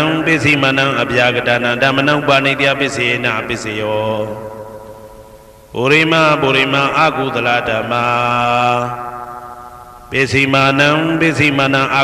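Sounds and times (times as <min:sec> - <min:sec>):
man chanting: 0:00.0 - 0:05.1, 0:05.7 - 0:09.4, 0:10.1 - 0:12.0.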